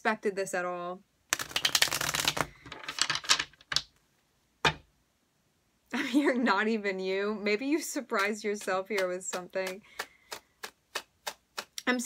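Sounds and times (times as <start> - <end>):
cards riffle shuffling: 1.3 - 3.9
deck tapped square: 1.3 - 3.9.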